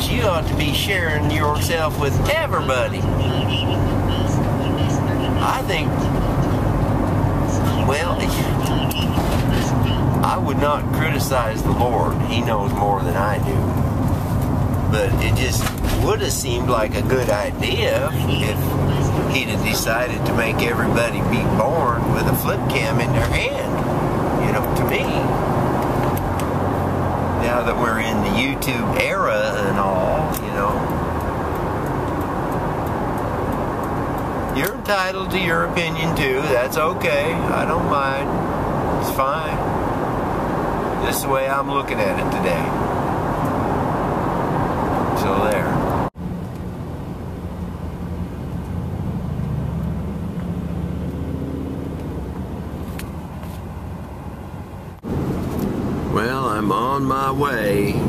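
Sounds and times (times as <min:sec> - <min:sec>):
van engine and road noise: 0:00.0 - 0:58.0.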